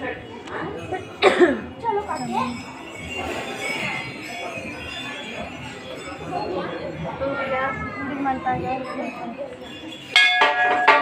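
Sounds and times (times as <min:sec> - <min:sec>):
people talking: 0:00.0 - 0:11.0
person coughing: 0:01.2 - 0:01.7.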